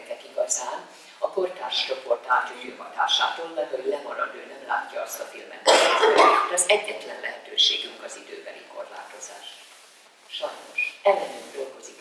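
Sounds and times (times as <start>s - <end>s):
person speaking: 0.0s - 12.0s
loud cough: 5.6s - 6.5s.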